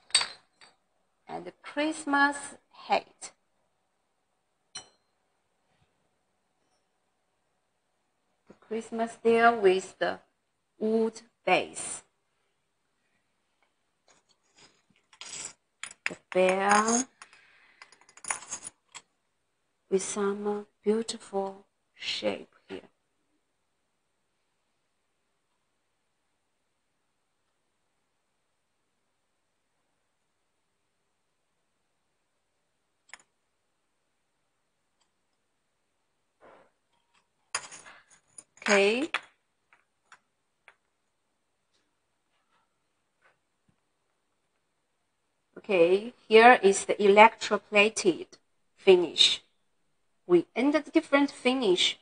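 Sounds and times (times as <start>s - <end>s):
porcelain ornaments clicking: 14.1s - 19.1s, 33.0s - 33.4s.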